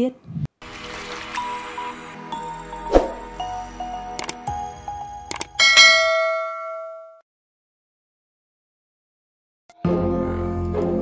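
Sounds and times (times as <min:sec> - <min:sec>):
bright bell ding: 0:05.6 - 0:07.2.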